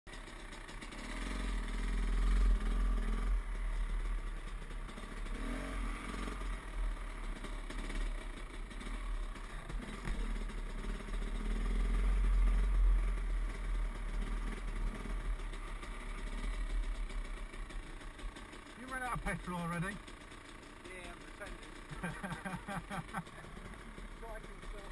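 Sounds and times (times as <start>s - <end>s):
dirt bike engine revving: 0.1s - 24.9s.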